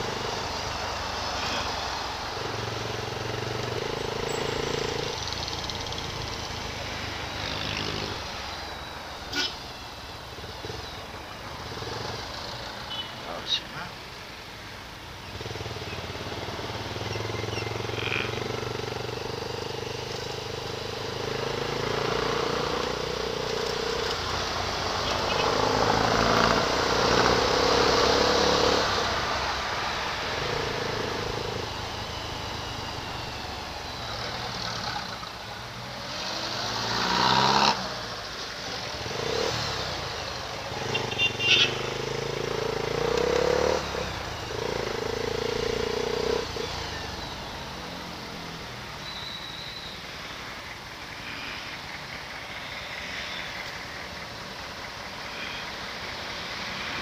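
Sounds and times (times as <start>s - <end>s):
motorcycle engine: 0.0s - 13.4s, 15.0s - 57.0s
road and wind noise: 0.0s - 57.0s.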